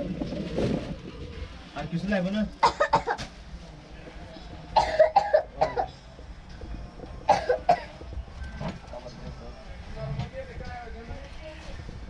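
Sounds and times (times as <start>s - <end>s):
person coughing: 4.8s - 5.9s, 7.3s - 8.0s.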